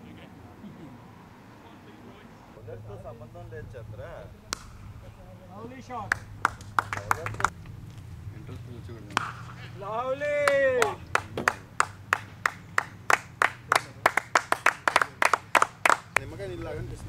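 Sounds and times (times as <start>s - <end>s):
crowd cheering: 5.6s - 7.5s, 9.2s - 16.2s
sparse applause: 6.1s - 7.5s, 10.2s - 16.2s.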